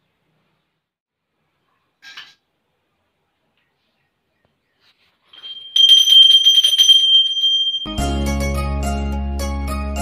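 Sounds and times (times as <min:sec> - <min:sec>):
hand bell ringing rapidly: 0:05.4 - 0:08.0.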